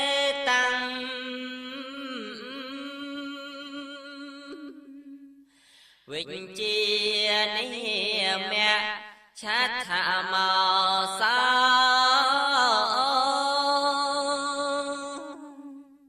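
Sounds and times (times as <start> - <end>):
man chanting: 6.1 - 15.8.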